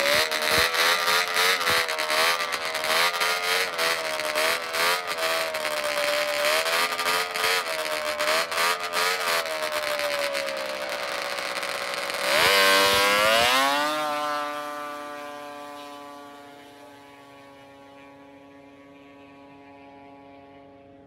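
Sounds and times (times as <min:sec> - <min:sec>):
snowmobile engine revving: 0:00.0 - 0:21.0.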